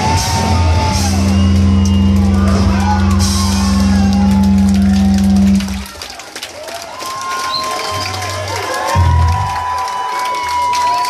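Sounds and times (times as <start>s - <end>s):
punk band final chord: 0.0s - 5.9s
crowd noise: 0.0s - 11.0s.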